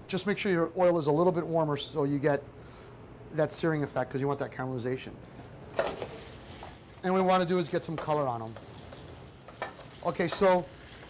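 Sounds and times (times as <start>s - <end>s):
meat sizzling in hot oil: 5.8s - 7.0s, 8.2s - 11.0s.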